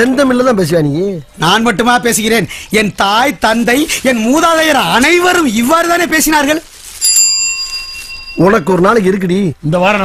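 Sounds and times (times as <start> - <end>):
small metal bell ringing: 7.0 - 9.0.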